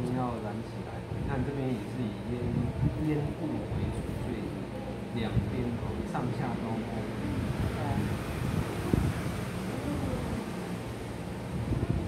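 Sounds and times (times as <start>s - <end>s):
faint distant voices: 0.0s - 12.0s
room hum with hiss: 0.0s - 12.0s.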